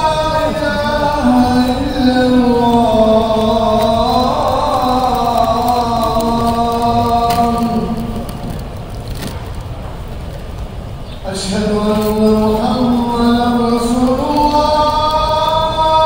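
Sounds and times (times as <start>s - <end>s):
man chanting in long gliding notes: 0.0s - 8.7s, 11.2s - 16.0s.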